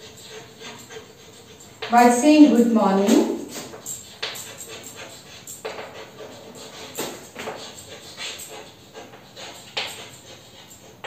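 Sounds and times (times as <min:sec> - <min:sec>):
chalk writing on chalkboard: 0:00.0 - 0:11.0.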